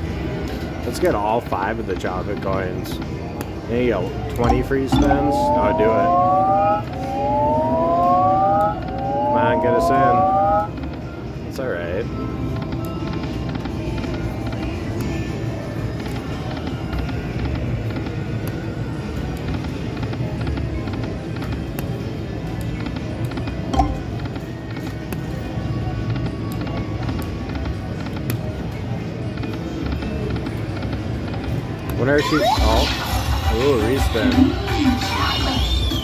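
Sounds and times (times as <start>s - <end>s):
slot machine game music: 3.6s - 34.8s
casino floor din: 23.7s - 24.3s.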